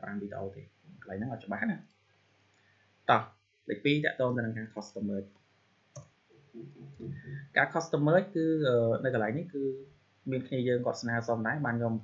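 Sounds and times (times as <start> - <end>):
soft speech: 0.0 - 1.9, 3.1 - 5.3, 6.5 - 12.0.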